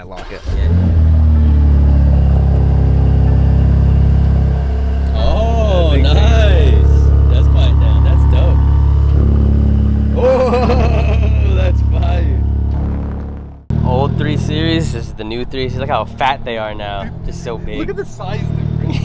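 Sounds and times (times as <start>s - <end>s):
car engine idling loudly: 0.5s - 18.6s.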